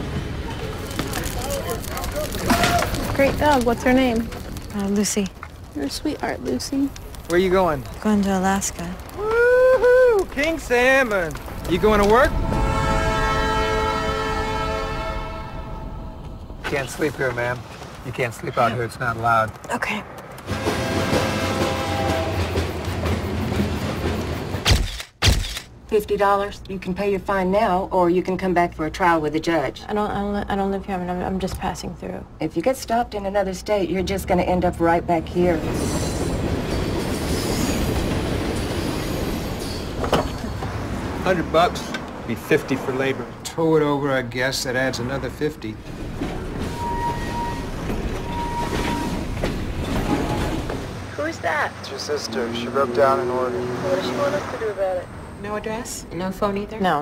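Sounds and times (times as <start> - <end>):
train rumbling and rattling: 0.0 - 1.8, 2.4 - 24.7, 34.1 - 57.0.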